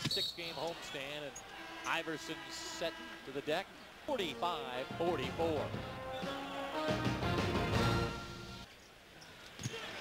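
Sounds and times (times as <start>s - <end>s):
faint background noise: 7.8s - 10.0s.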